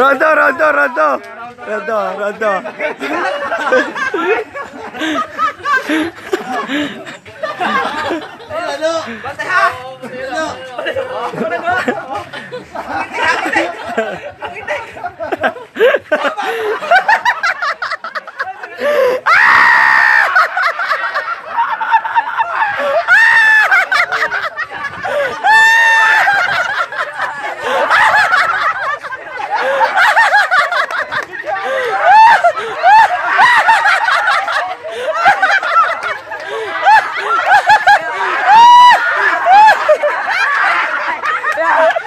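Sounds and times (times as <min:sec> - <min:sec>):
excited voices: 0:00.0 - 0:42.0
people laughing: 0:00.0 - 0:42.0
high-pitched human scream: 0:19.2 - 0:20.3.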